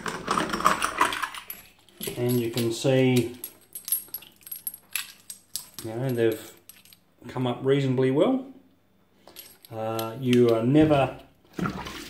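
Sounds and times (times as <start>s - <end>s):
brass cartridge cases clinking: 0.0s - 7.1s, 9.2s - 10.6s.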